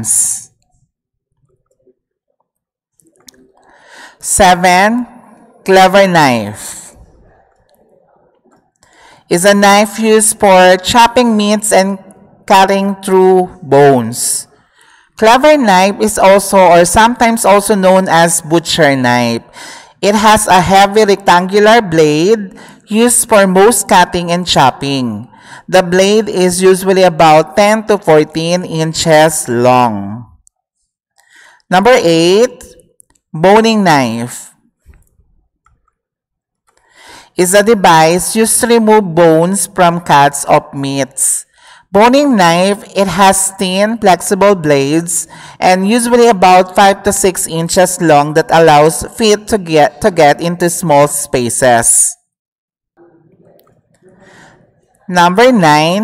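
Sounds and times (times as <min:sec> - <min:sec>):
intake of breath: 0:03.6 - 0:04.2, 0:08.8 - 0:09.3, 0:14.6 - 0:15.2, 0:19.5 - 0:20.0, 0:25.3 - 0:25.7, 0:31.2 - 0:31.7, 0:36.8 - 0:37.4, 0:41.5 - 0:41.9, 0:45.3 - 0:45.6, 0:54.1 - 0:54.8.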